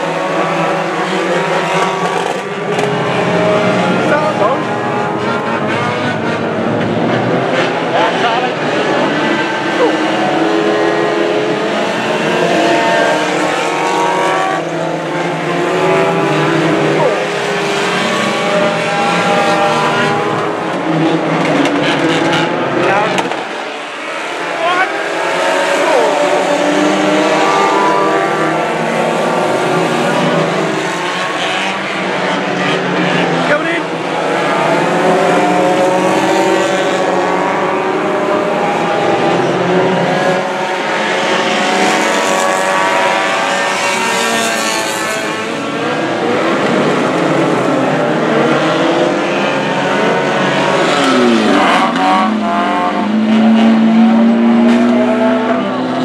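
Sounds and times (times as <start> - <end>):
racing car engines revving: 0.0 - 56.0.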